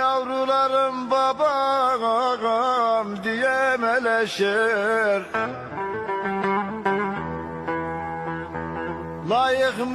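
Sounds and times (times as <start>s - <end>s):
plucked string instrument: 0.0s - 9.9s.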